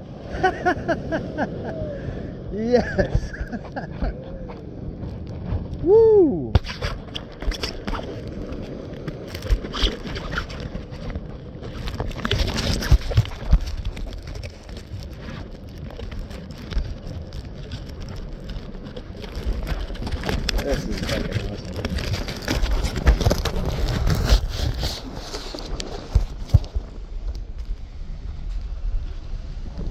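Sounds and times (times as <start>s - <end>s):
wind buffeting microphone: 0.0s - 29.9s
crackles and clicks from handling: 3.0s - 28.9s
man whooping: 5.8s - 6.6s.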